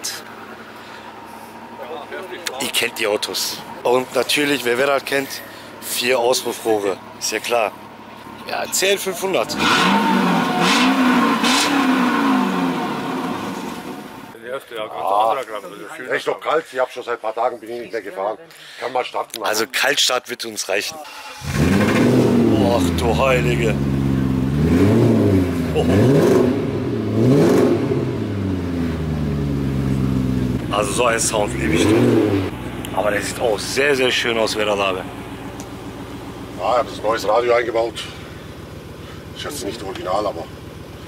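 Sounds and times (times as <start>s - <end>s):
car engine revving: 5.8s - 14.4s, 21.1s - 40.9s.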